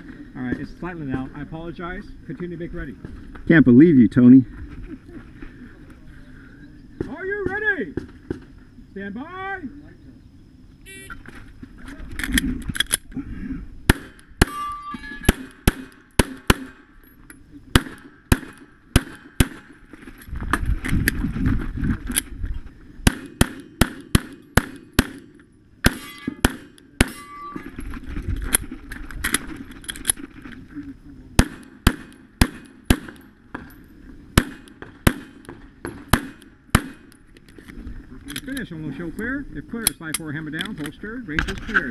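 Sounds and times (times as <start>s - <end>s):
pistol shots: 13.9s - 16.9s, 17.7s - 19.8s, 23.0s - 27.3s, 31.4s - 33.4s, 34.4s - 37.1s.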